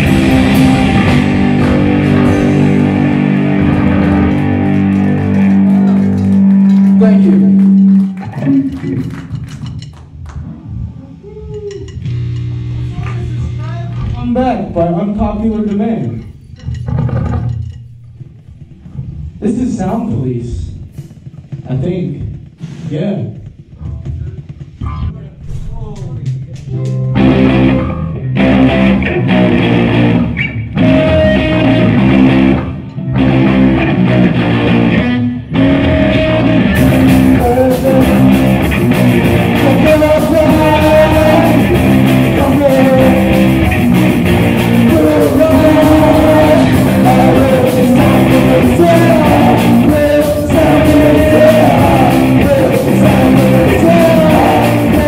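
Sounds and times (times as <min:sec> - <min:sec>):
live band playing: 0:00.0 - 0:09.9, 0:26.6 - 0:55.0
electric guitars: 0:00.0 - 0:10.0, 0:26.6 - 0:55.0
drums: 0:00.0 - 0:55.0
person singing: 0:30.8 - 0:32.1, 0:34.9 - 0:55.0.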